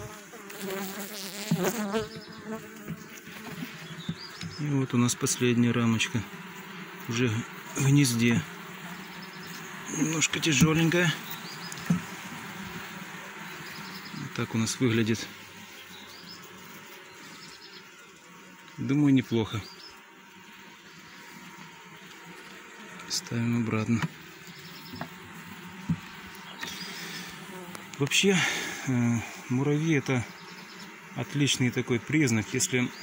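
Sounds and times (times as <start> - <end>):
honeybees buzzing: 0.0 - 33.0.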